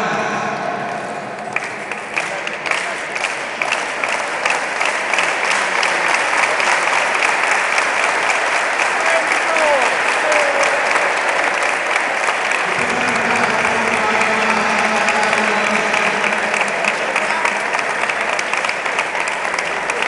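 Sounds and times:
crowd rhythmic clapping: 0:00.0 - 0:20.0.

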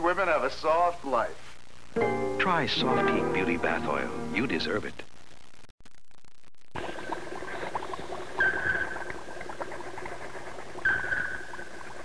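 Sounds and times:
glassware bubbling and gurgling: 0:06.8 - 0:12.0.

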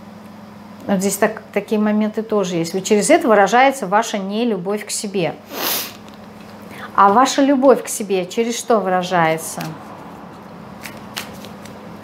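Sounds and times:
cards shuffled by hand: 0:09.5 - 0:12.0.

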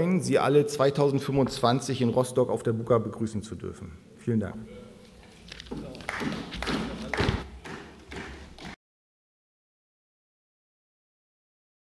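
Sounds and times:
light clapping: 0:05.7 - 0:08.8
knocking on desks: 0:06.1 - 0:08.8.

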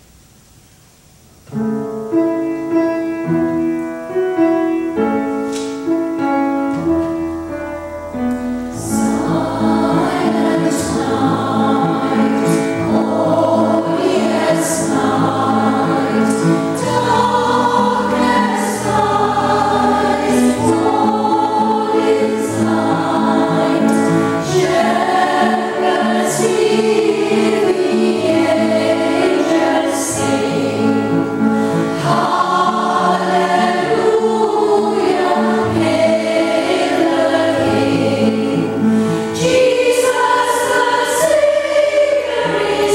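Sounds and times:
piano accompaniment: 0:01.0 - 0:42.9
women's choir singing: 0:08.7 - 0:42.9.

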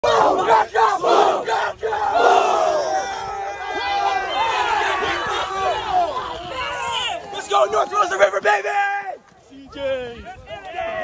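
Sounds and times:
team shouting together: 0:00.0 - 0:09.2
people yelling and whooping: 0:00.2 - 0:09.2, 0:10.2 - 0:11.0.

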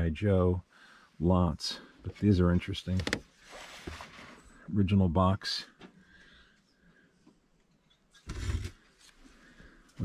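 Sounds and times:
cardboard box rustling scrape: 0:03.4 - 0:04.4, 0:08.3 - 0:08.8.

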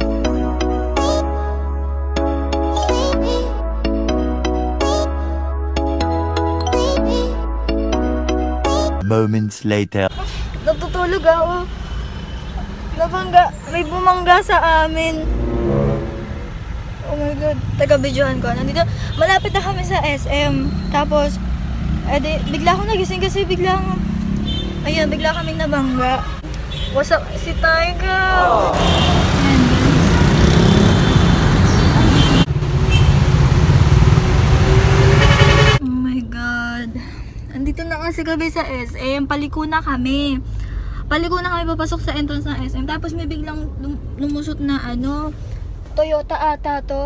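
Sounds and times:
vehicle engines rumbling: 0:09.1 - 0:47.0.

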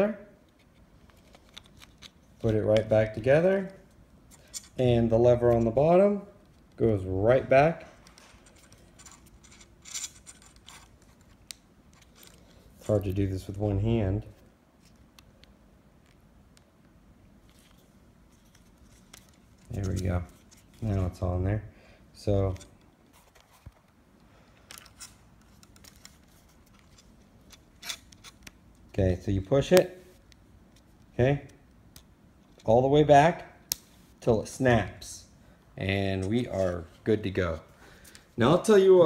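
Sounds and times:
faint rubbing and fiddling: 0:07.8 - 0:15.1, 0:17.4 - 0:21.4, 0:22.3 - 0:28.9.

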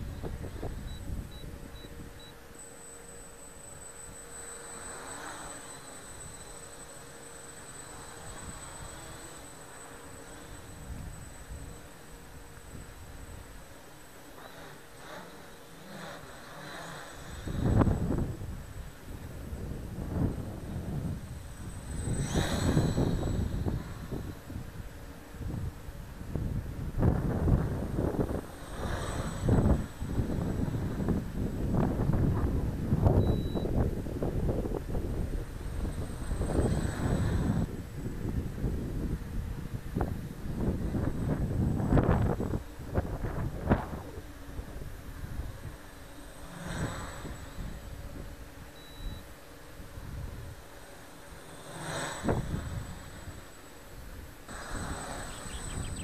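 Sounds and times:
wind buffeting microphone: 0:00.0 - 0:02.5, 0:15.0 - 0:56.0
drone propellers whining: 0:00.0 - 0:56.0.

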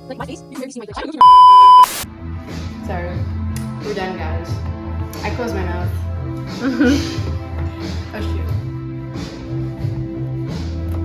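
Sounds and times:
background music with bass line: 0:00.0 - 0:11.0
electronic censor bleep: 0:01.2 - 0:02.0.

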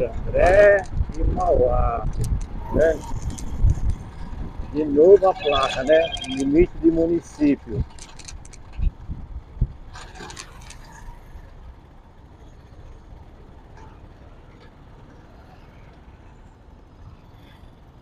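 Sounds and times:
motorcycle engine rumble: 0:00.0 - 0:18.0
road noise: 0:00.0 - 0:18.0.

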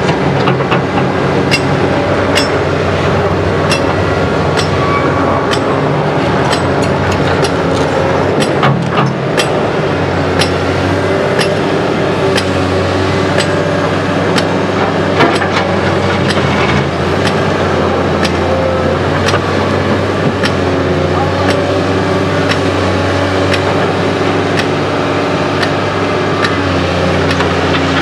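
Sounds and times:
excavator diesel engine running: 0:00.0 - 0:28.0.

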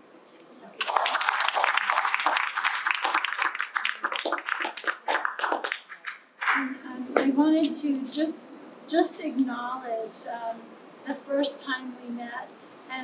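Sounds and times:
small group applauding: 0:00.8 - 0:06.7.

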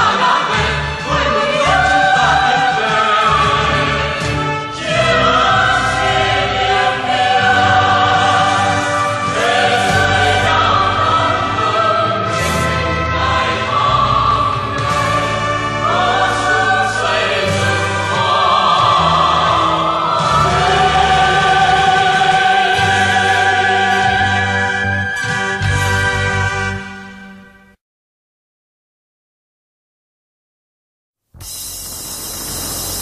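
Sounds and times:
choir singing: 0:00.0 - 0:26.8
instrumental accompaniment: 0:00.2 - 0:27.7
steady bass line: 0:03.3 - 0:26.8.

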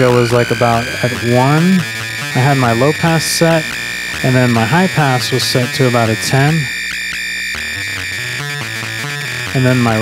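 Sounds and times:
thin filtered synthesizer tones: 0:00.0 - 0:10.0.

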